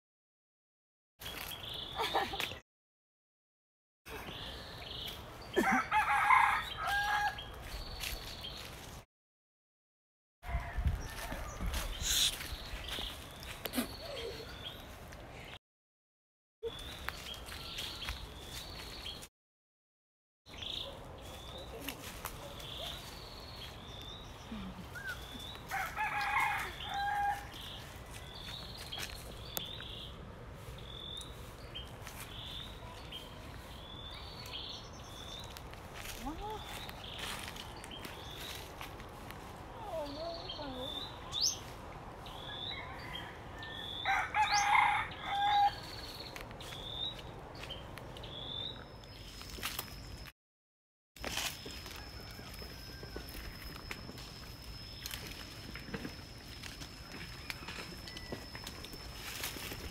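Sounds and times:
rooster crowing: 5.6s - 7.5s, 10.4s - 11.9s, 25.7s - 27.6s, 42.4s - 45.9s, 51.8s - 53.5s.

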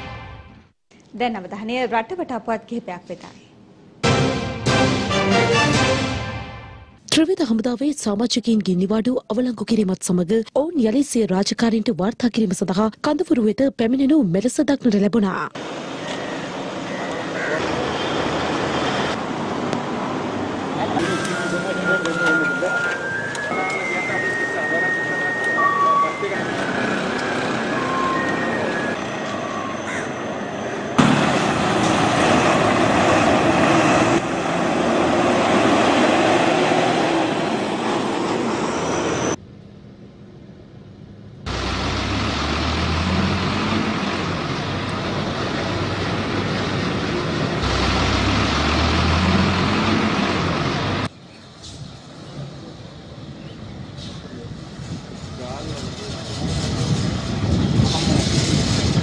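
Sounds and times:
diesel buses running: 3.7s - 7.1s, 14.8s - 59.0s
traffic noise: 15.5s - 59.0s
people's voices: 20.7s - 29.0s
low engine hum: 40.0s - 51.1s.

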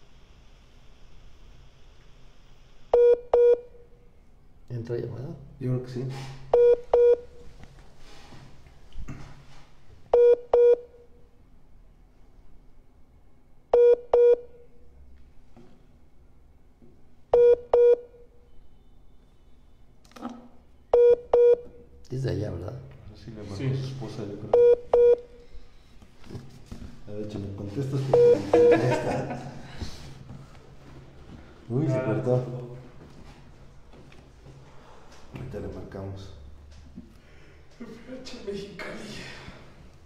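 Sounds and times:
electronic telephone beep: 2.9s - 3.7s, 6.5s - 7.2s, 10.1s - 10.9s, 13.7s - 14.5s, 17.4s - 18.1s, 20.9s - 21.6s, 24.5s - 25.2s, 28.1s - 28.8s.

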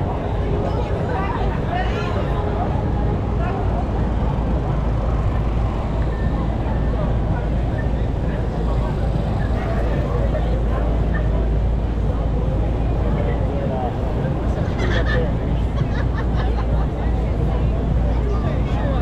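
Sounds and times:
crowd chatter: 0.0s - 19.0s
traffic rumble: 0.0s - 19.0s.

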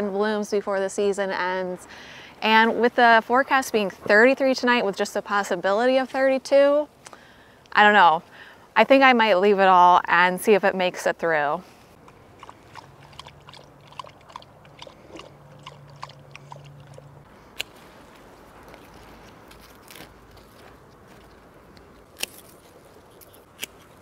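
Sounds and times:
dog lapping water: 12.1s - 17.2s
snips cutting stems: 17.4s - 24.0s.

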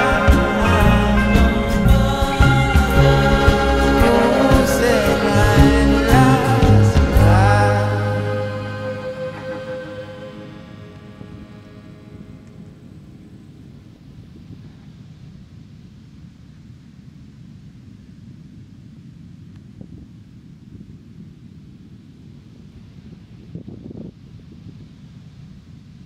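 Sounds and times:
song: 0.0s - 13.6s
wind rumbling on microphone: 10.4s - 26.0s.

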